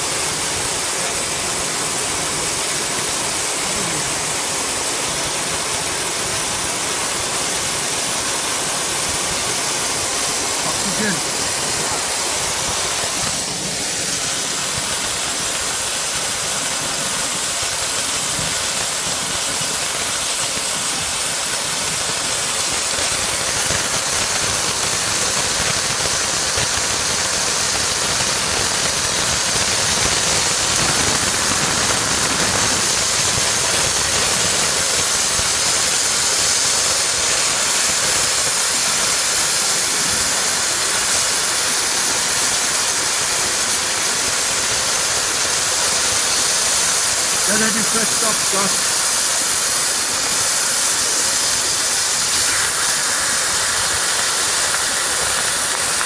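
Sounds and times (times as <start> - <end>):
cutting torch hissing: 0.0 - 56.0.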